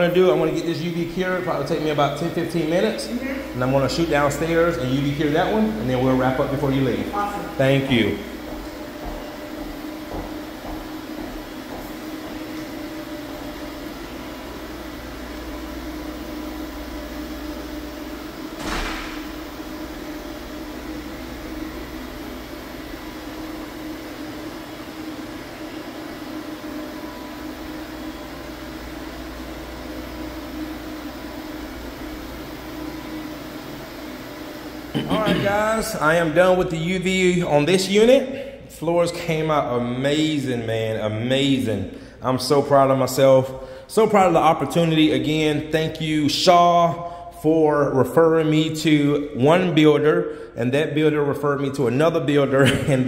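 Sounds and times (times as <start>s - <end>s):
floor machine humming: 0.0s - 50.0s.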